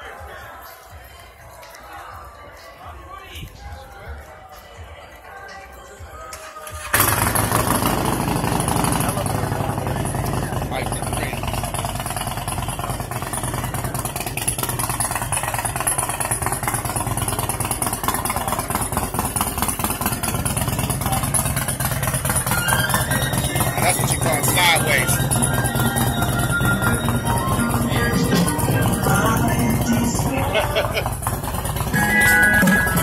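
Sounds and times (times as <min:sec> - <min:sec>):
crowd chatter: 0:00.0 - 0:33.0
vehicle engine idling: 0:06.6 - 0:33.0.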